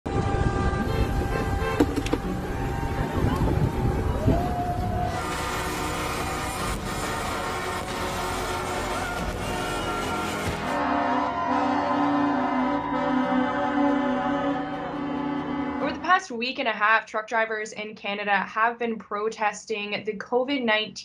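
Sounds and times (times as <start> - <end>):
truck air horns blowing: 0.1 - 16.1
vehicle noise: 0.1 - 16.1
crowd voices: 2.3 - 16.1.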